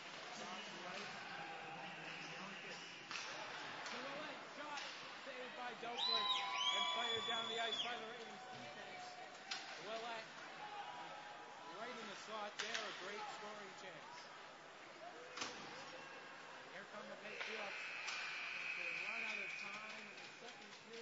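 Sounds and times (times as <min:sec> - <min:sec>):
spectators' voices: 0:00.0 - 0:21.0.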